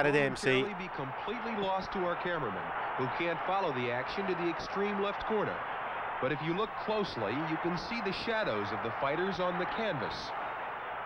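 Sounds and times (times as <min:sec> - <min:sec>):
man talking: 0:00.0 - 0:05.3, 0:06.2 - 0:10.3.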